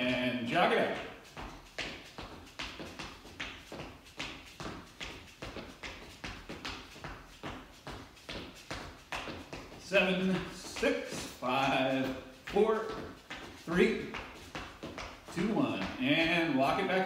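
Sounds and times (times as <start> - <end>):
footsteps jogging on hard floor: 0.0 - 17.0.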